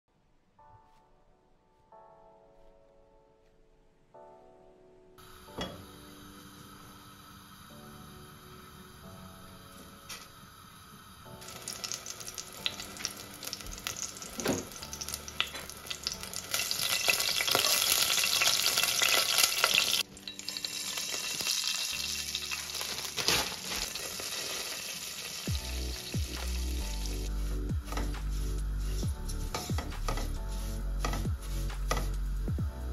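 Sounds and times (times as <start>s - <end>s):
butter sizzling in a pot: 5.2s - 32.5s.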